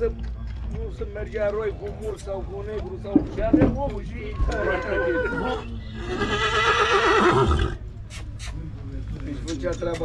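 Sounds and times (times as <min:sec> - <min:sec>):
horse neighing: 0:04.4 - 0:07.8.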